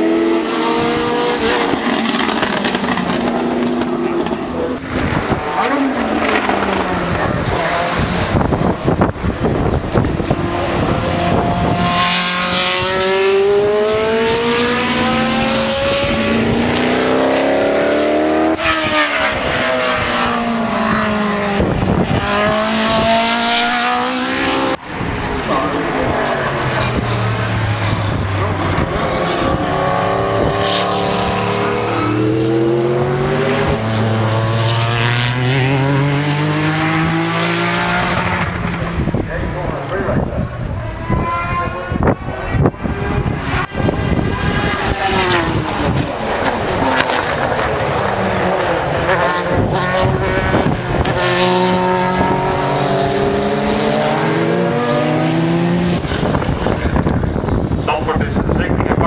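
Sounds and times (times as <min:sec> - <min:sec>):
racing cars passing at speed: 0:00.0 - 0:59.0.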